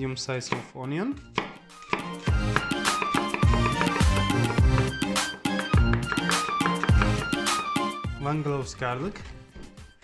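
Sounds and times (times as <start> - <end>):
background music with a beat: 1.2 - 8.4.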